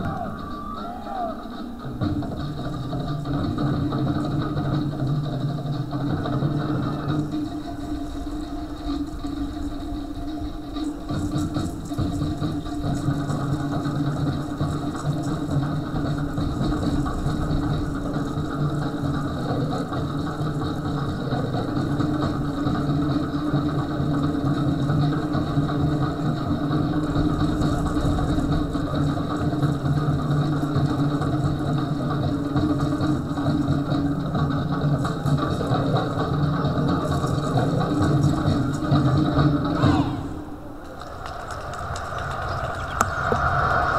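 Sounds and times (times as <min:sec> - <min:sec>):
fast rolling drumming: 0:00.0 - 0:43.9.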